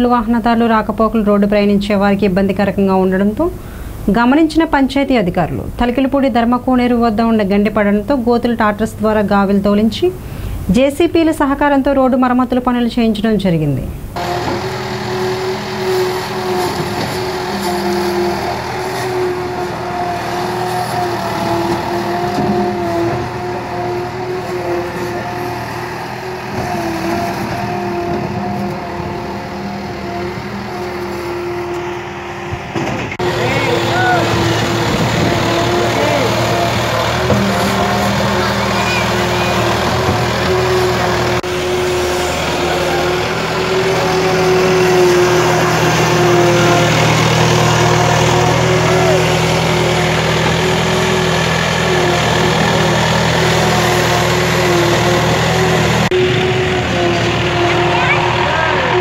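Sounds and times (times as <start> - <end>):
diesel engine running: 0.0 - 13.2, 13.9 - 59.0.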